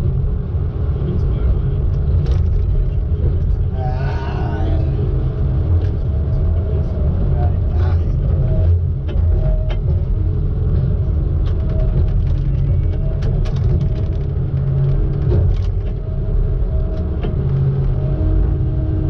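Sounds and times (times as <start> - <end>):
diesel engine low rumble: 0.0 - 19.0.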